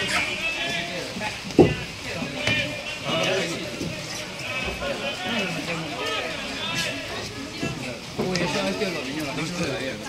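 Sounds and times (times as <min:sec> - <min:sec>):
people calling out: 0:00.0 - 0:08.6.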